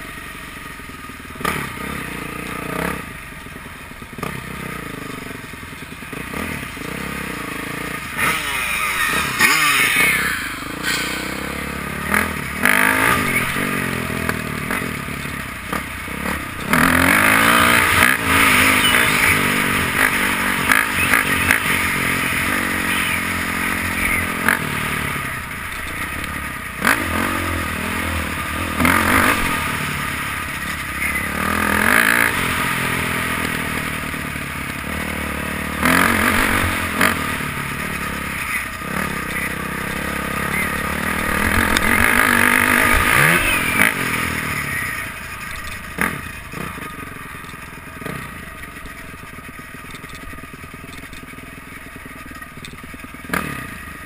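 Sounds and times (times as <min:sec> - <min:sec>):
dirt bike engine revving: 0:00.0 - 0:03.4, 0:04.0 - 0:54.0.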